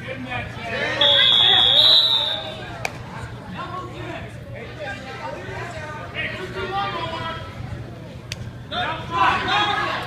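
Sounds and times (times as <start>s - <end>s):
spectators' voices: 0.0s - 10.0s
referee's whistle blast: 1.0s - 2.6s.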